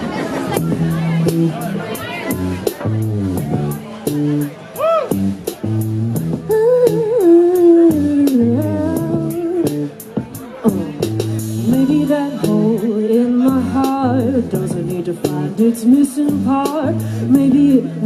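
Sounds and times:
synth-pop band playing live: 0.0s - 18.0s
bass line: 0.4s - 18.0s.

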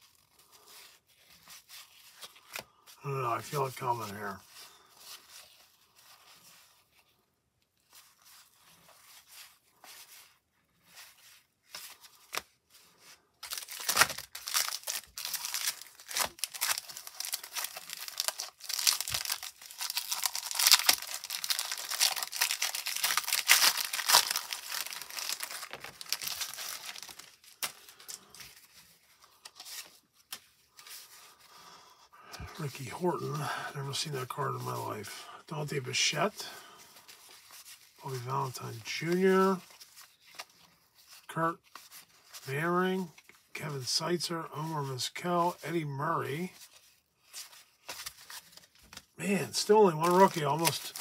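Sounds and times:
cellophane wrapper crinkling: 7.8s - 31.4s, 46.6s - 51.0s
cardboard cards being handled: 7.8s - 31.5s, 32.3s - 44.8s, 46.4s - 51.0s.

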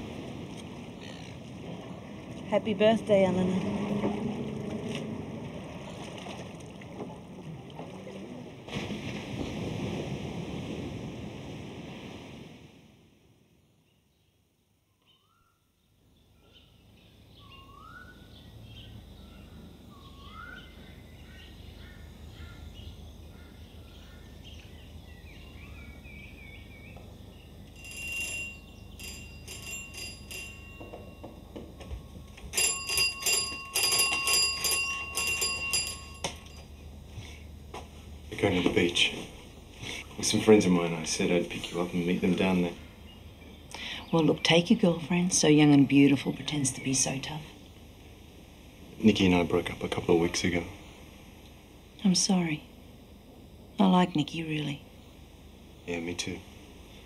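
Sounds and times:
wind and sea rushing: 0.0s - 13.5s
faint low hum: 13.6s - 57.0s
small birds chirping: 13.9s - 27.7s
metallic clinks and clatters: 27.8s - 36.8s.

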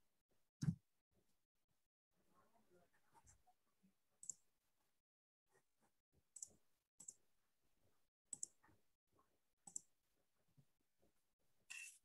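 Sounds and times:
faint computer clicks: 8.3s - 8.6s.

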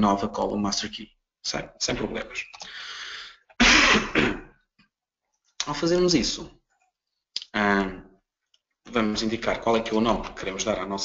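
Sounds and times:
man clearing his throat: 3.6s - 4.6s.

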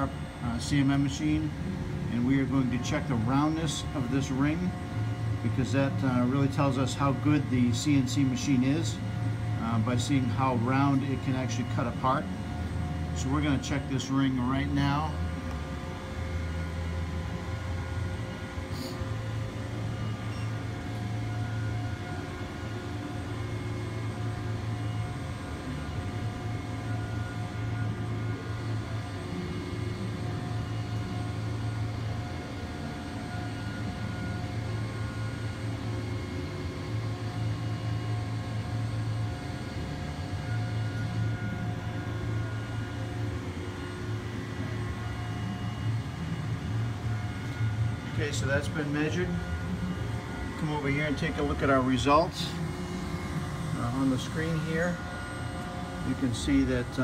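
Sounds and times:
faint steady whines: 0.0s - 57.0s
measuring machine humming: 0.0s - 57.0s.

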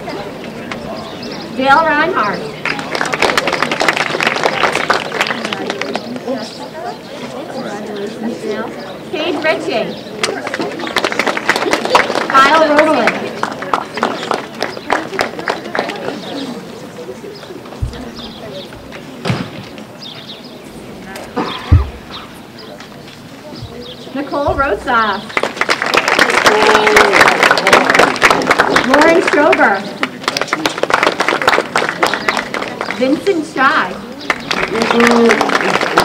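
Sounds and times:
murmur of voices: 0.0s - 36.0s
scattered hand claps: 2.5s - 6.4s, 10.2s - 16.4s, 24.5s - 33.4s, 34.2s - 36.0s.

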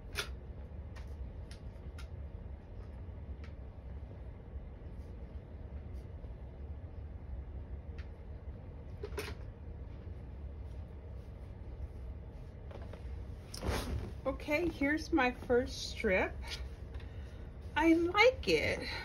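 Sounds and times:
steady low hum: 0.0s - 19.0s.

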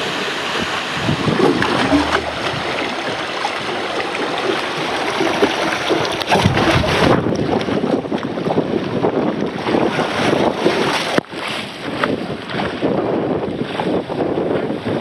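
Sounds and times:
wind buffeting microphone: 0.0s - 5.4s, 6.2s - 15.0s
rider sliding down water slide: 0.0s - 7.9s
rushing water: 0.0s - 13.0s.

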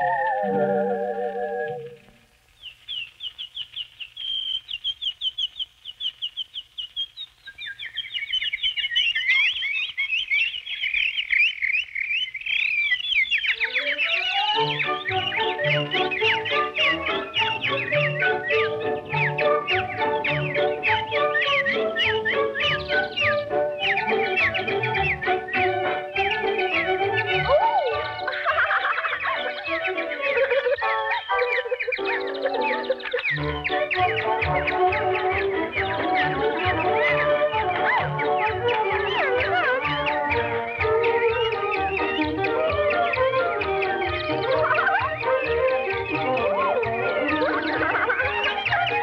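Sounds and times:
cartoon bird chirping: 0.0s - 2.2s, 2.9s - 49.0s
lower bird voice chirping: 0.0s - 49.0s
music with climbing notes: 13.6s - 49.0s.

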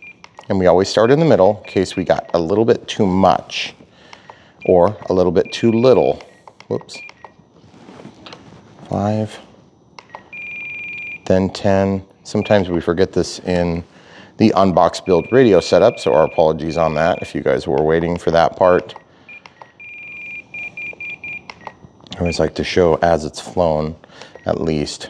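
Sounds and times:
radio transmitter beeping: 0.0s - 7.4s, 8.9s - 13.8s, 14.4s - 22.8s.

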